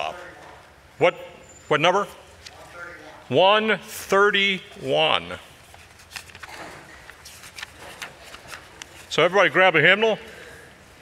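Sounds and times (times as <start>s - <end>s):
paper rustling and page turning: 5.6s - 9.3s.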